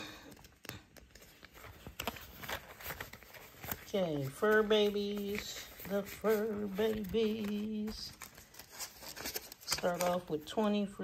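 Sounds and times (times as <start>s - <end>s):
plastic envelopes crinkling: 0.0s - 10.8s
banknotes rustling: 0.0s - 11.0s.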